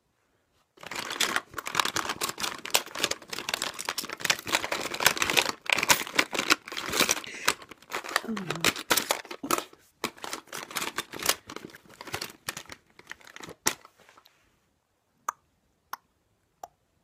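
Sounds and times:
close rustling and crackling: 0:00.7 - 0:14.3.

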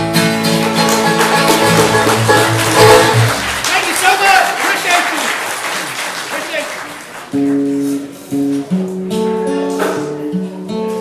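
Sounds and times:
audience applauding: 0:00.4 - 0:08.0.

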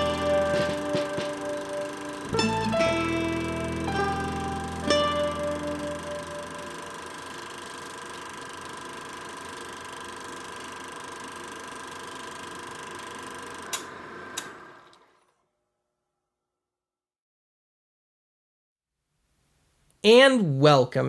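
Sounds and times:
plucked chord ringing: 0:00.0 - 0:07.4
small machine humming: 0:00.0 - 0:15.5.

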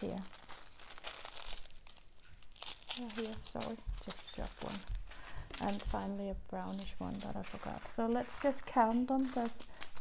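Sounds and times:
plastic bags crinkling: 0:00.0 - 0:10.0.

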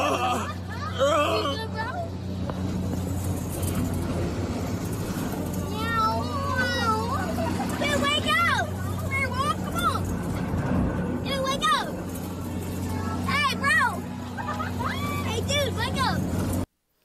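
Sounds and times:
low machine hum: 0:00.0 - 0:16.7
people yelling on a ride: 0:13.0 - 0:16.2.

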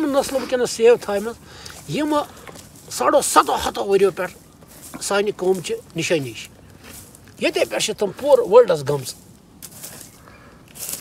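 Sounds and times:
man talking: 0:00.0 - 0:06.6, 0:07.4 - 0:09.2.

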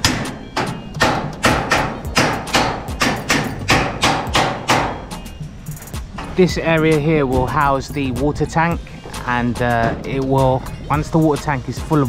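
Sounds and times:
hammer blows: 0:00.0 - 0:11.0.

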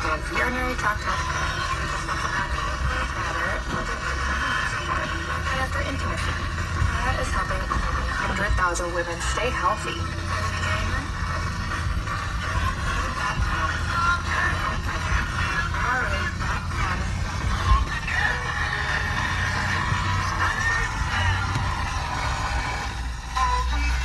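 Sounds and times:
engine and tyres rumbling: 0:00.0 - 0:24.0
music from car radio: 0:00.0 - 0:24.0.

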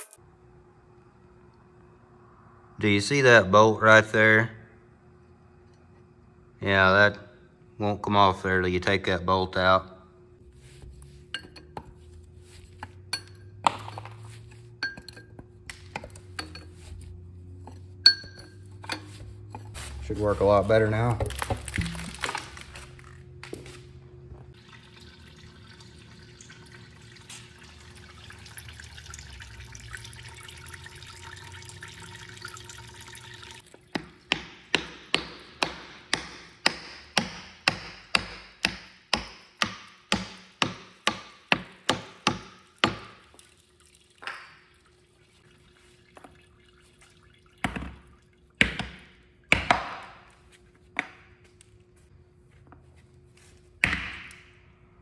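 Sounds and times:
hammer knocking on wooden block: 0:34.0 - 0:43.2.

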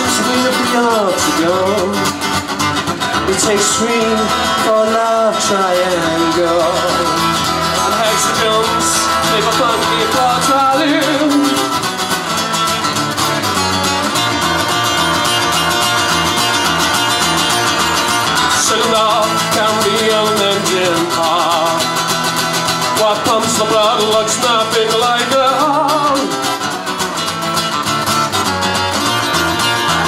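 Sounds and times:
live band playing: 0:00.0 - 0:30.0.

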